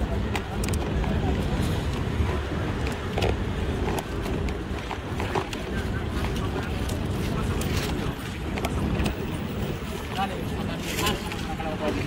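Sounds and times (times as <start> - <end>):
indistinct chatter of passers-by: 0.0 - 12.0
wind rumble on microphone: 0.0 - 12.0.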